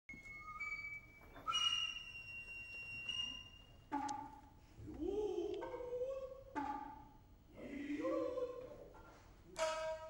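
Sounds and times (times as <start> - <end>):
bamboo flute shrill notes: 0.1 - 4.4.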